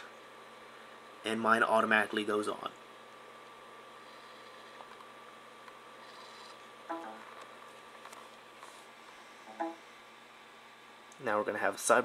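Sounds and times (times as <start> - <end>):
low hum with light hiss: 0.0 - 12.0.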